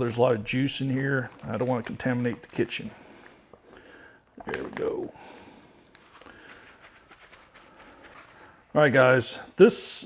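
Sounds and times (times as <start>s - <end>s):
hands handling meat: 0.0s - 3.8s
plastic packaging rustling: 0.0s - 3.8s, 4.4s - 9.0s
paper towel rustling: 5.9s - 9.4s.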